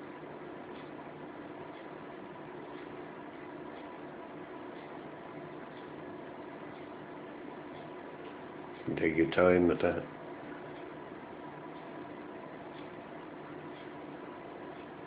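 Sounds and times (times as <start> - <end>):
faint hum: 0.0 - 15.0
soft ticks: 0.6 - 15.0.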